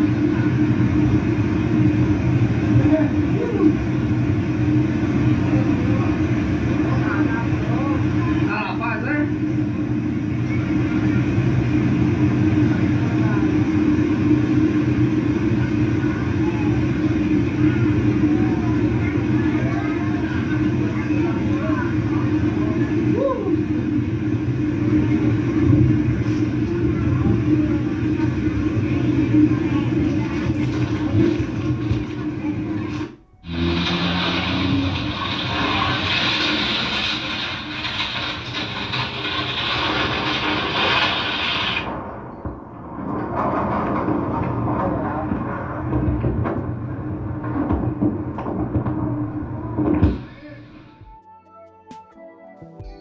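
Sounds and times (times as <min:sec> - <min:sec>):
music: 0:50.3 - 0:53.0.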